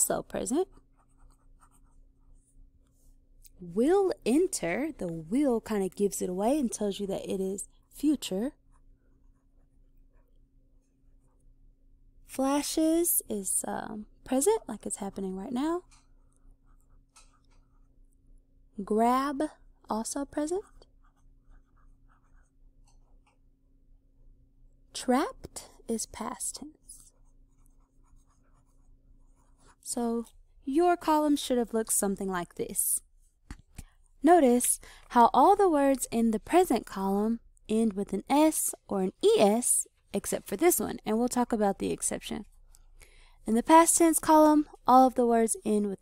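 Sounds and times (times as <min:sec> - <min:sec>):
pen scratching on paper: 0:00.4 - 0:03.0, 0:20.2 - 0:23.4, 0:26.3 - 0:29.9.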